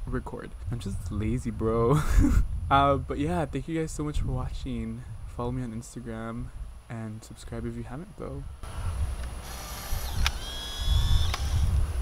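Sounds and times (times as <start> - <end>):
camera shutter click: 9.2 - 11.7
film-eject motor whirring: 9.2 - 11.8.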